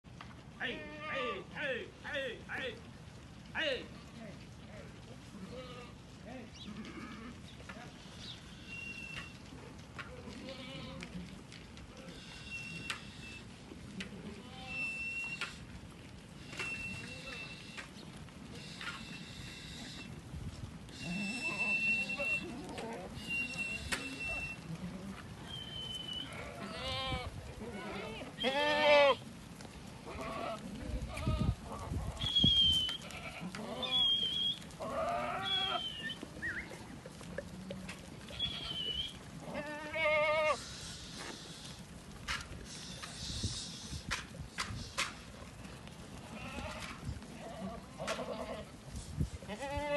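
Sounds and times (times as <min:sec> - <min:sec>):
goats bleating: 0:00.6 - 0:01.6, 0:05.2 - 0:09.3, 0:10.1 - 0:15.6, 0:16.4 - 0:17.9, 0:20.9 - 0:29.4, 0:30.0 - 0:41.8, 0:45.7 - 0:48.8, 0:49.5 - 0:49.9.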